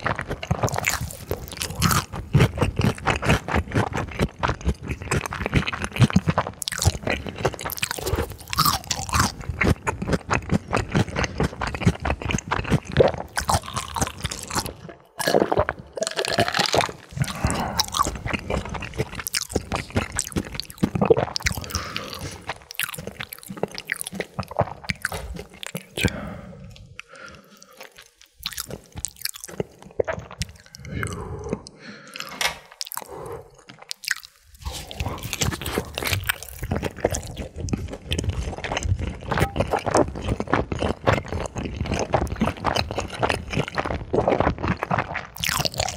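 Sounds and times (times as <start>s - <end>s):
chewing crisp fried food: 0.0s - 45.9s.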